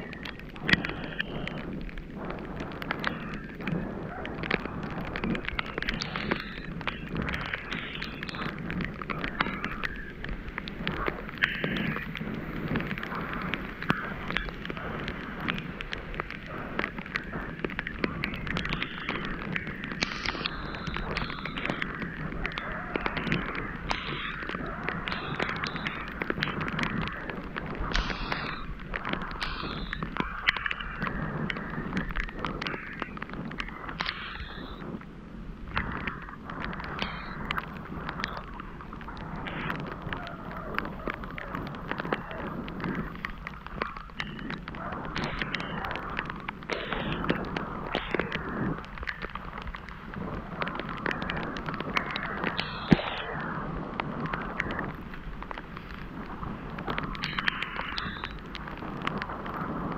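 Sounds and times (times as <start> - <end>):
small ticks and knocks: 0.0 - 59.9
wind rumbling on microphone: 0.0 - 59.9.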